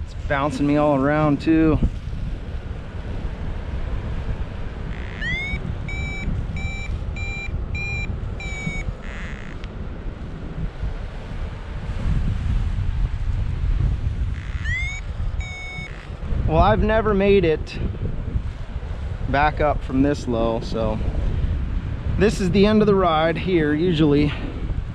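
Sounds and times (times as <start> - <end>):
wind rush on microphone: 0.0 - 24.9
variometer beeping and chirping: 4.9 - 9.7, 14.3 - 16.2.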